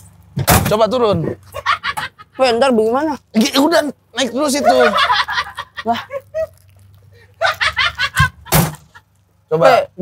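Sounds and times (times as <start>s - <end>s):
people laughing: 1.5s - 2.4s, 4.4s - 9.1s.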